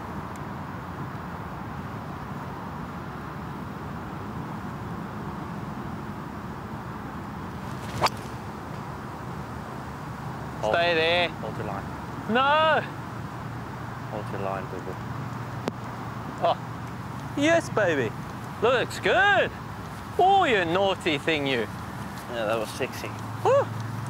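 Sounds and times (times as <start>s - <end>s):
outdoor background hiss: 0.0s - 24.0s
golf club striking ball: 7.7s - 8.4s.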